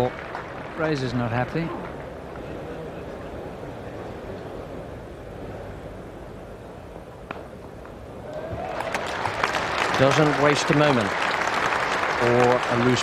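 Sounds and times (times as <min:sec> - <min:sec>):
crowd applause: 0:00.0 - 0:03.1, 0:08.2 - 0:13.0
crowd murmur: 0:01.6 - 0:07.1.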